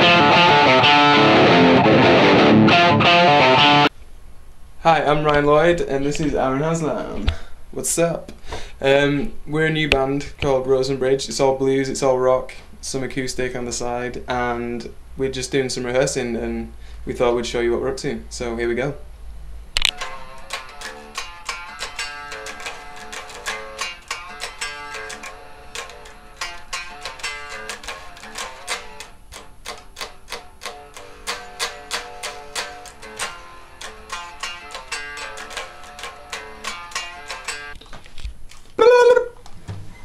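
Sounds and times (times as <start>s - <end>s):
electric guitar plucked notes: 0.0s - 3.9s, 19.8s - 37.8s.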